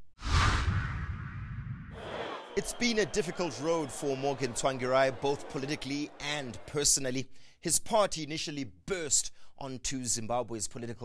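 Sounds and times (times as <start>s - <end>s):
low rumble: 0.2s - 2.0s
whoosh sweep: 0.2s - 2.6s.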